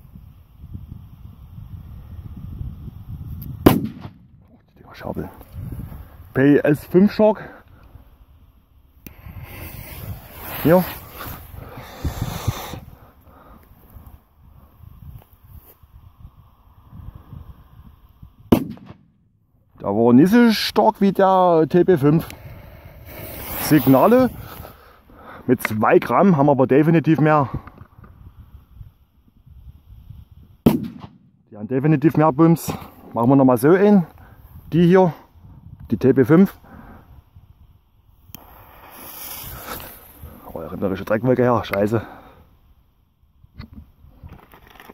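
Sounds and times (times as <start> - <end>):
firecracker bang: 3.6 - 4.4, 18.5 - 19.1, 30.6 - 31.3
fuse hissing: 8.9 - 14.0.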